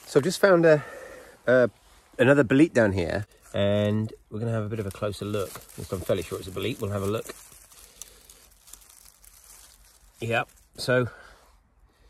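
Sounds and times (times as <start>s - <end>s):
dry leaf litter rustling: 3.5s - 11.4s.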